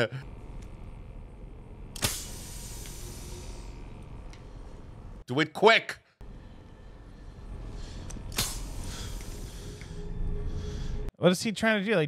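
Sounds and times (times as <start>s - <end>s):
low steady hum: 0.0s - 5.3s, 6.2s - 11.1s
sharp mechanical click: 2.0s - 3.2s, 8.1s - 9.4s.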